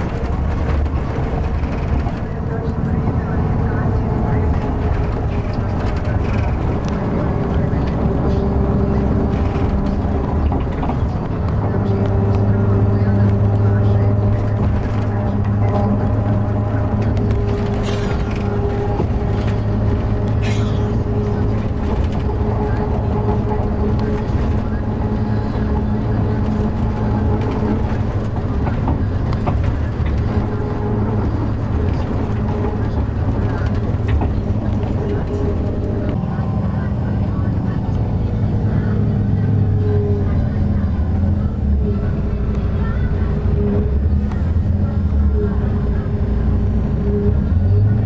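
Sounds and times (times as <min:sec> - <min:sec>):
people talking: 0:00.0 - 0:48.0
vehicle engine droning: 0:00.0 - 0:48.0.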